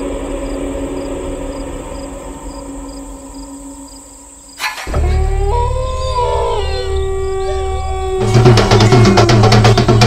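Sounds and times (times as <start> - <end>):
eerie howl-like tones: 0.0 - 10.0
steady low drone: 0.0 - 10.0.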